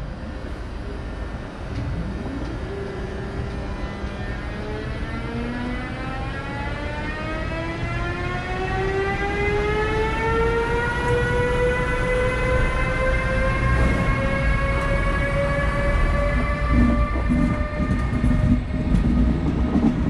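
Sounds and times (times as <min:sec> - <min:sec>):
electric locomotive whine: 0:00.0 - 0:20.0
train rumble: 0:00.0 - 0:20.0.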